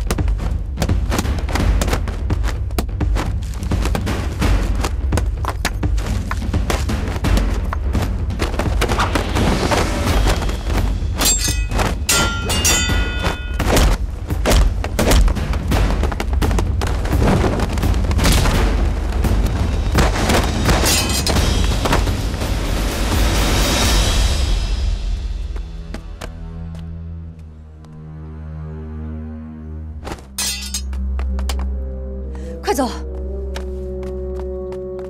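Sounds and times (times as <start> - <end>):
dramatic music: 0.0 - 35.0
punch and kick impacts: 13.2 - 18.8.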